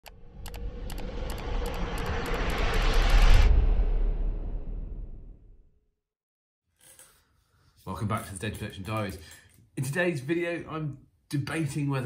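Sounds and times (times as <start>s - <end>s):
deep rumble: 0.0s - 5.8s
rising whoosh: 0.0s - 5.8s.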